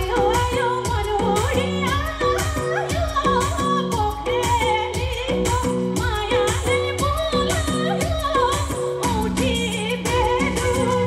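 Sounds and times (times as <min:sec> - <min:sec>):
bass: 0:00.0 - 0:11.0
percussion beat: 0:00.0 - 0:11.0
woman singing through speakers: 0:00.0 - 0:11.0.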